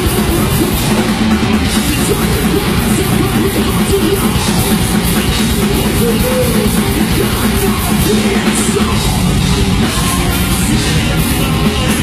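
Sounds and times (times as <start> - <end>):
distorted electric guitars: 0.0 - 12.0
drum kit: 0.0 - 12.0
vocalist singing: 0.0 - 12.0.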